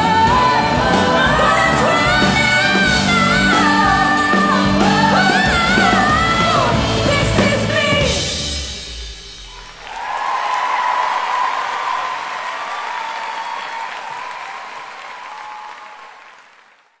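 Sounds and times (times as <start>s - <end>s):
audience applause: 9.5s - 17.0s.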